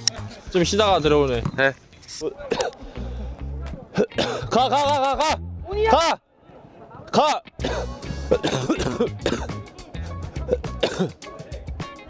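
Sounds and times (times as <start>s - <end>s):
man coughing: 2.5s - 2.8s, 3.9s - 4.9s, 7.6s - 9.6s, 10.4s - 11.2s
music with deep bass beat: 7.6s - 12.0s.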